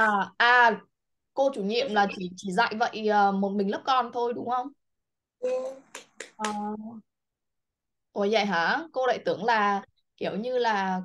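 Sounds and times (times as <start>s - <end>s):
person speaking: 5.4s - 7.0s.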